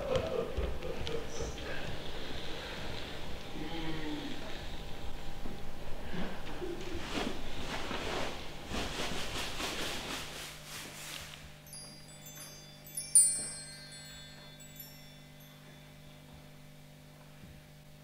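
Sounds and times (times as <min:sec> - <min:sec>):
steady low hum: 0:00.0 - 0:18.0
bell-like chimes tinkling: 0:11.6 - 0:17.2.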